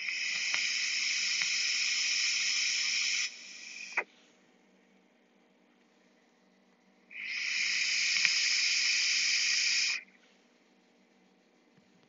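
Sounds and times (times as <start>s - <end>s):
airy hiss of vape draw: 0.0s - 4.0s, 7.2s - 10.0s.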